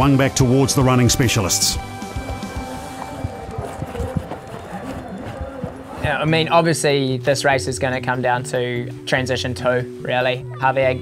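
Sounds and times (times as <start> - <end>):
running footsteps: 0.0 - 9.0
faint background music: 0.0 - 11.0.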